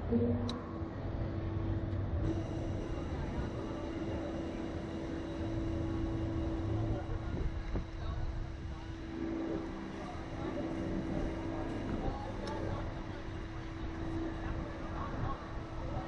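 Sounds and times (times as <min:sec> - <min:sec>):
ride machinery humming: 0:00.0 - 0:16.0.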